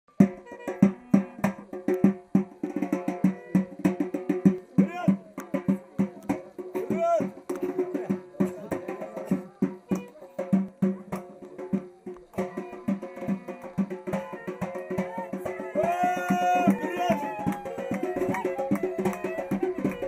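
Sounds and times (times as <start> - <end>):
fast loud drum beats: 0.1 - 20.0
clarinet playing dance tune: 16.4 - 20.0.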